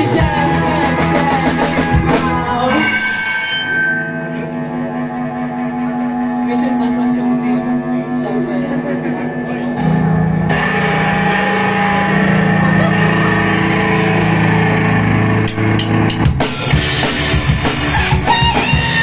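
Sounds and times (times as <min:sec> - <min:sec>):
drums with cymbals: 0:00.0 - 0:03.7, 0:15.4 - 0:19.0
bass guitar: 0:00.0 - 0:19.0
electric guitar notes ringing: 0:00.0 - 0:19.0.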